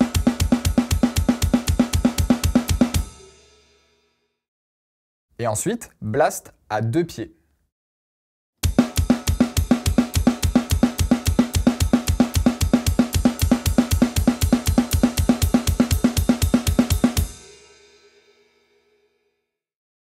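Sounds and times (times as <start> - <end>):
drum kit blast beat: 0.0 - 3.8, 8.6 - 17.8.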